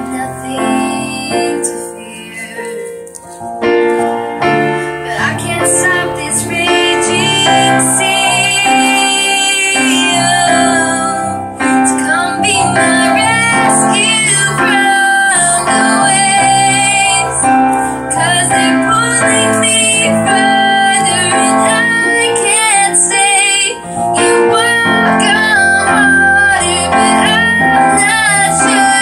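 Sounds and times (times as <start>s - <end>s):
woman singing: 0.0s - 3.1s, 4.6s - 29.0s
piano chords: 0.0s - 29.0s.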